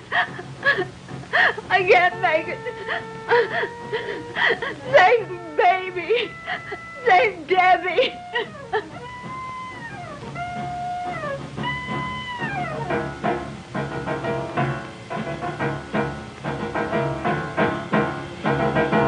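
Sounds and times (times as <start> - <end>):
person sobbing and whimpering: 0.0 - 1.7, 2.4 - 9.2.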